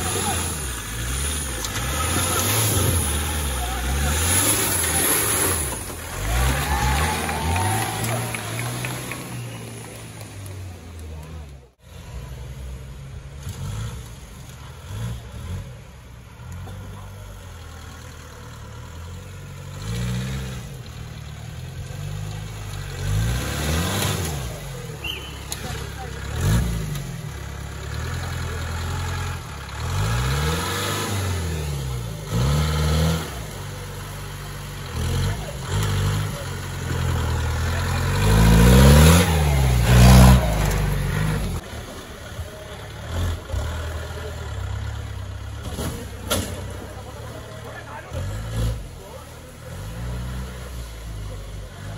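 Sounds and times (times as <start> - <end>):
jeep engine revving: 0.0 - 51.9.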